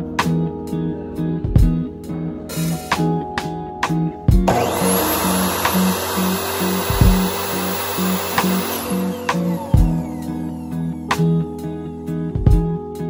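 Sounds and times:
guitar music: 0.0 - 13.0
miter saw cutting wood: 4.5 - 11.1.

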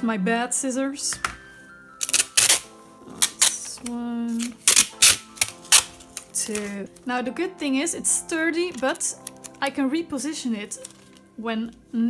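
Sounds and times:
faint background music: 0.0 - 12.0
packing tape ripping off roll: 2.0 - 7.0, 8.8 - 9.6, 10.7 - 11.2.

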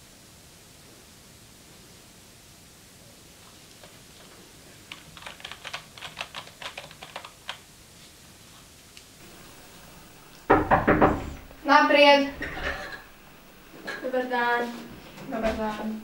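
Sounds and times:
computer keyboard typing: 4.8 - 7.6
loud knocks on a door: 10.4 - 11.5.

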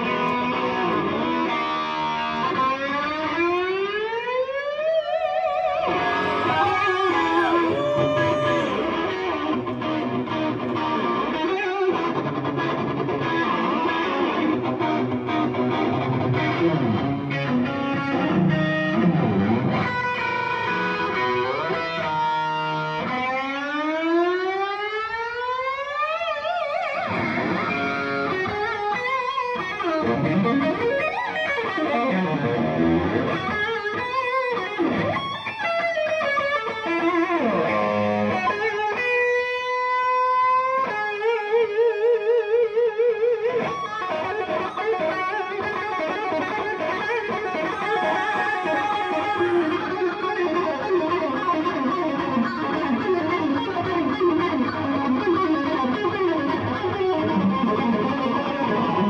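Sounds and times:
electric guitar solo: 0.0 - 59.0.

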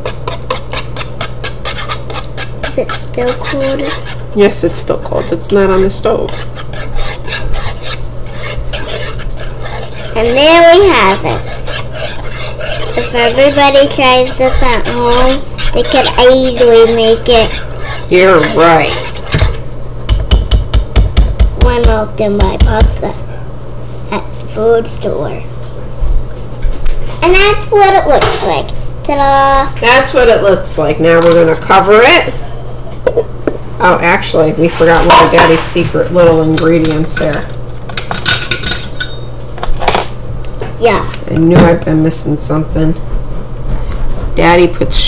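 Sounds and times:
whisk tapping metal saucepan: 0.0 - 23.0
steady low hum: 0.0 - 45.0
utensil clinking on metal saucepan: 38.0 - 39.3.

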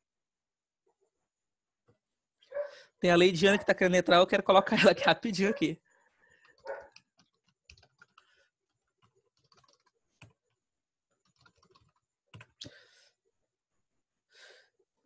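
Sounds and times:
computer keyboard typing: 6.4 - 10.5, 11.2 - 12.7.

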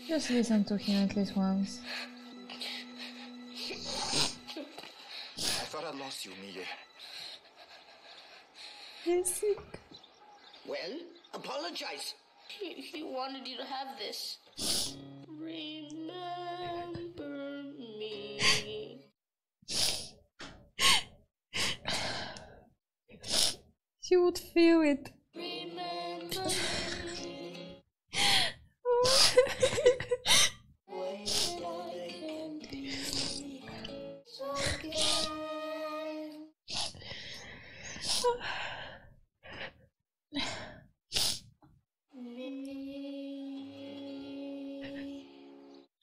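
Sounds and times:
held musical chord: 0.0 - 5.3
sighing breaths: 1.8 - 5.8, 6.4 - 10.1, 20.8 - 23.6, 26.3 - 27.3, 31.2 - 31.6, 32.6 - 35.4, 36.7 - 39.8
person sniffling: 14.6 - 15.0, 19.7 - 20.2, 23.2 - 23.6, 31.3 - 31.6
woman sobbing: 18.2 - 18.9, 26.3 - 27.4, 28.2 - 30.5, 32.6 - 35.7, 44.8 - 45.2.

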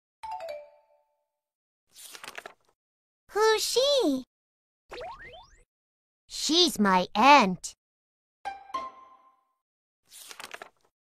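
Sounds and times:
paper page turning: 1.9 - 2.8, 10.1 - 10.9.

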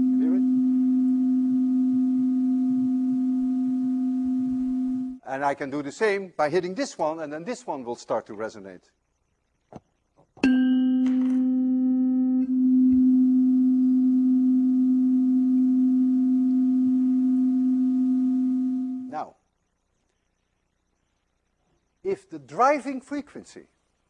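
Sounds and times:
tuning fork ringing: 0.0 - 5.2, 10.4 - 19.1.

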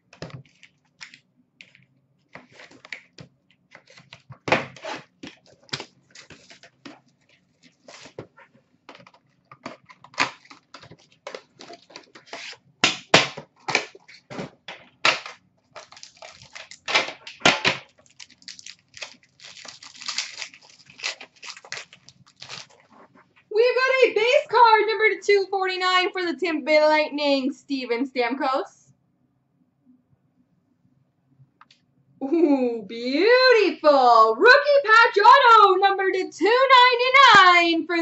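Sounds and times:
cardboard ripping and crinkling: 3.7 - 8.2, 15.1 - 23.2.

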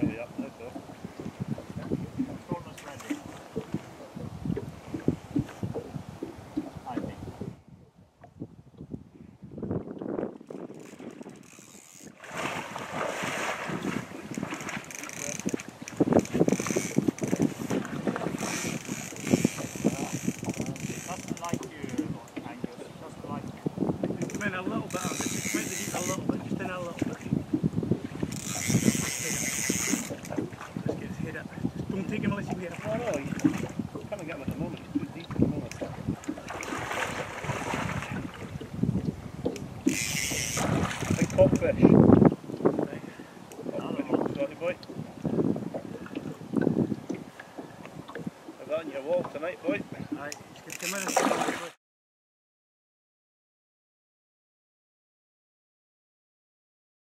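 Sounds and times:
wind rumbling on microphone: 0.0 - 51.4
splashing through shallow water: 10.6 - 20.7, 26.9 - 31.0, 32.2 - 41.8, 49.6 - 51.8
fish splashing in river water: 12.0 - 15.9, 36.2 - 38.5, 40.0 - 41.2, 50.8 - 51.8.

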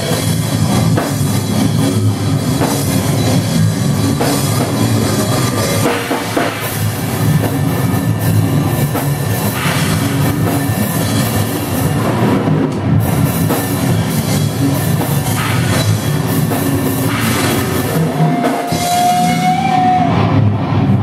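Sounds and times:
drum kit played hard: 0.0 - 20.9
heavy metal band playing: 0.0 - 21.0.

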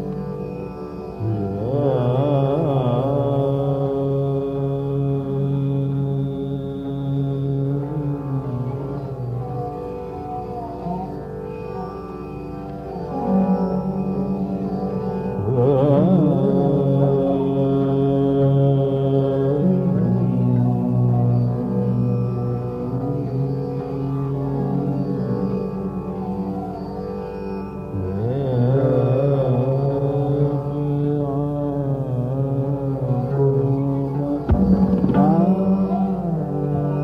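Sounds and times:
tanpura drone: 0.0 - 37.0
man singing classical vocal: 1.2 - 11.2, 13.0 - 26.8, 27.9 - 37.0.

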